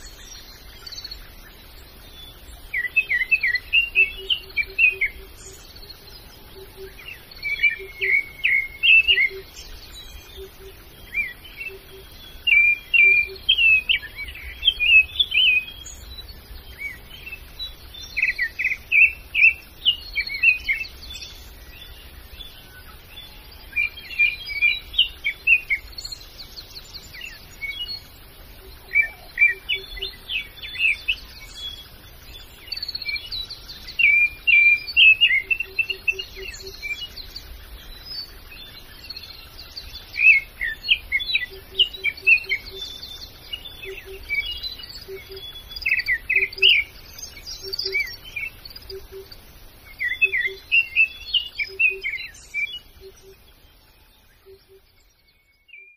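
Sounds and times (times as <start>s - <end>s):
birds chirping and singing: 0.0s - 55.9s.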